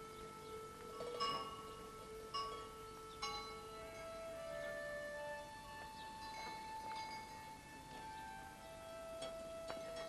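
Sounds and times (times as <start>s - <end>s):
bells chiming: 0.0s - 10.0s.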